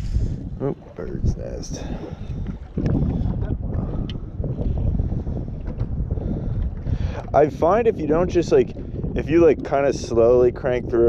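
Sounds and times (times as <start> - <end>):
water lapping against metal hull: 0.0 - 11.0
wind buffeting microphone: 0.0 - 11.0.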